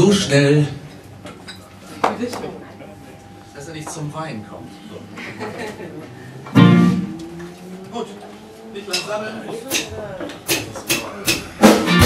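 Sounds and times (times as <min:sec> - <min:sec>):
electric guitar chord ringing: 0:03.3 - 0:08.7.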